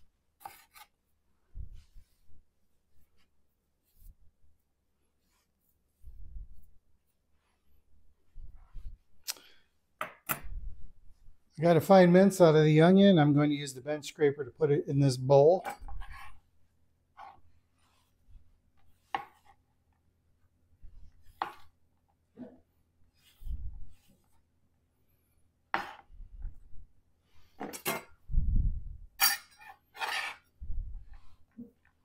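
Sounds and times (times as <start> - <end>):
bench scraper scraping cutting board: 0.4 - 0.9, 29.9 - 30.5.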